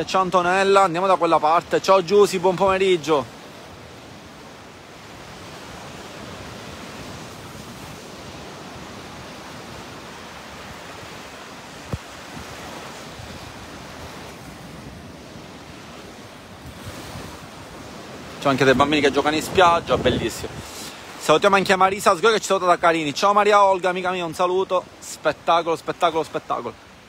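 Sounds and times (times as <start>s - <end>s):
waves washing onto sandy beach: 0.0s - 27.0s.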